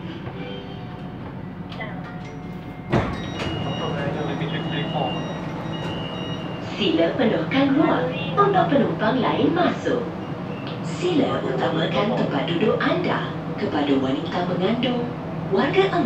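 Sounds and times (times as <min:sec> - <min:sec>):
train low hum: 0:00.0 - 0:16.0
train thump: 0:02.2 - 0:06.6
high beeping door chime: 0:02.2 - 0:06.8
recorded announcement: 0:03.2 - 0:16.0.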